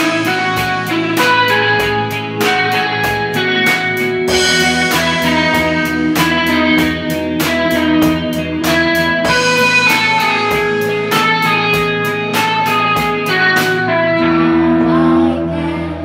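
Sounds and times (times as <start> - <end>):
drums and cymbals: 0.0 - 14.6
electric guitars ringing: 0.0 - 16.0.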